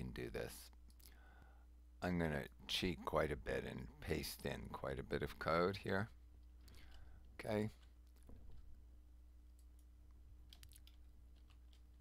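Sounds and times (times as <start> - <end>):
low steady hum: 0.0 - 12.0
computer keys clicking: 9.5 - 12.0.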